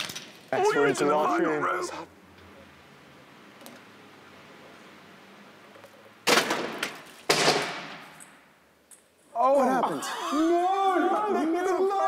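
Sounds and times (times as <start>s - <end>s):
loud crashes of falling objects: 6.2s - 8.1s.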